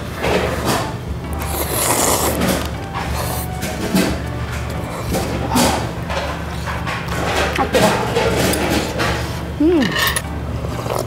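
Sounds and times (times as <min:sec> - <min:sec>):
background music: 0:00.0 - 0:11.0
noodles slurped noisily: 0:01.4 - 0:03.5
chewing: 0:01.4 - 0:09.4, 0:10.7 - 0:11.0.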